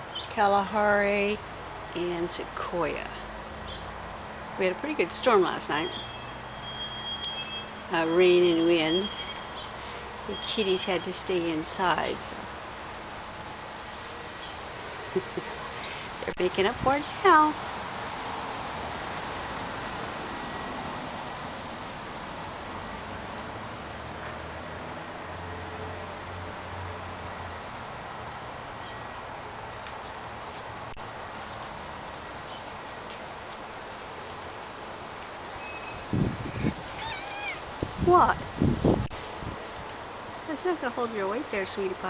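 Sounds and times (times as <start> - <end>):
outdoor background noise: 0.0 - 42.0
cat rustling in leafy bush: 27.6 - 42.0.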